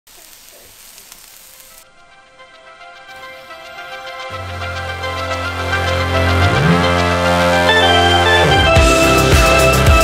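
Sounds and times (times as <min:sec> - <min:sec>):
kebabs sizzling on charcoal grill: 0:00.1 - 0:06.1
music: 0:01.5 - 0:10.0.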